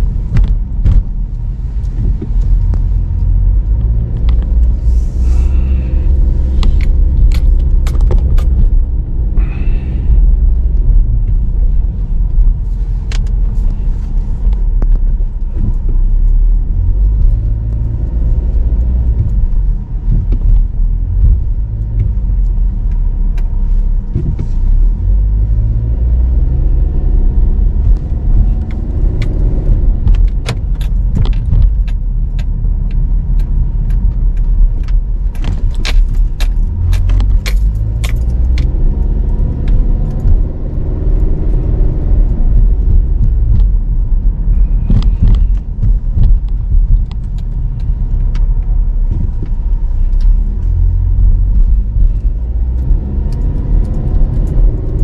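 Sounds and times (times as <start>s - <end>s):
car engine and road rumble: 0.0s - 55.0s
small clicks or rattles: 30.0s - 40.4s.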